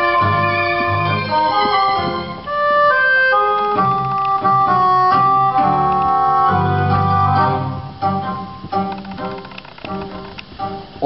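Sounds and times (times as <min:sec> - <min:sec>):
slow instrumental melody: 0:00.0 - 0:11.0
sustained chords: 0:00.0 - 0:11.0.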